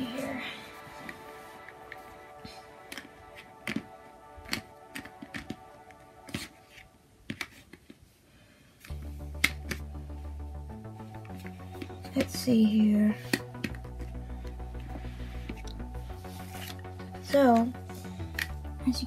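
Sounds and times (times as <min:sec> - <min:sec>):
background music: 0:00.0 - 0:07.6, 0:08.8 - 0:19.0.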